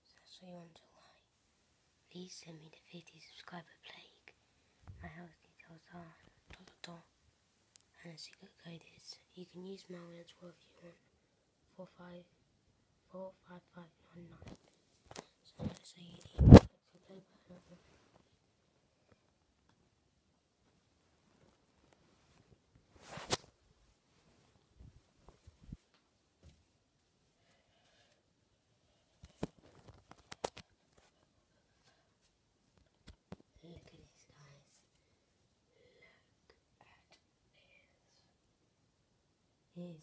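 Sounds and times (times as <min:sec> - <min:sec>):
faint whispered speech: 0:15.2 - 0:17.9, 0:33.5 - 0:34.9, 0:35.7 - 0:38.4
microphone handling rubbing: 0:15.6 - 0:16.7.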